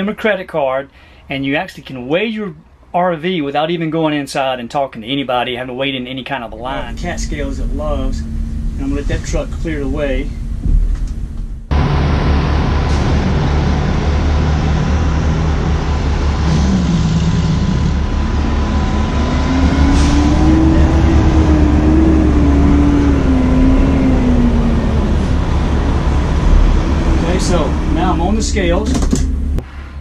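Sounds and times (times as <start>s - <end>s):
engine rumbling: 5.5s - 30.0s.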